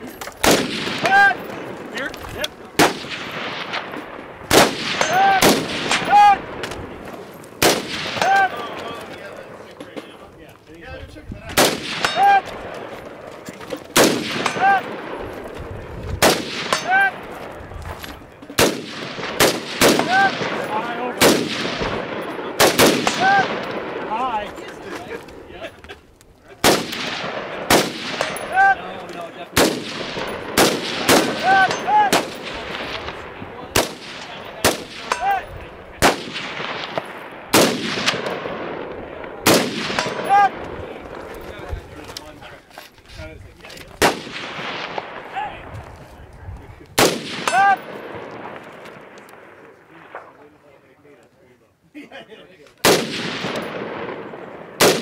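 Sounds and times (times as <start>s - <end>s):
rifle shots echoing: 0.3s - 9.8s, 11.5s - 17.7s, 18.5s - 25.4s, 26.6s - 41.4s, 44.0s - 45.8s, 47.0s - 50.4s, 52.8s - 55.0s.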